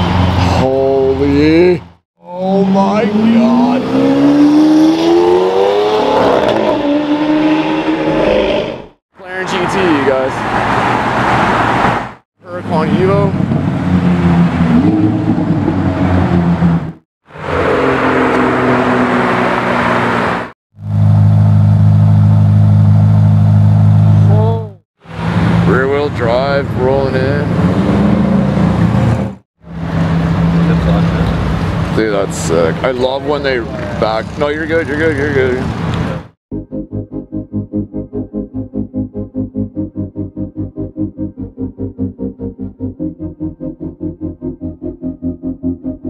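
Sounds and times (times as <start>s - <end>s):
cars driving by and revving: 0.0s - 36.4s
low engine drone: 20.8s - 35.6s, 36.5s - 46.0s.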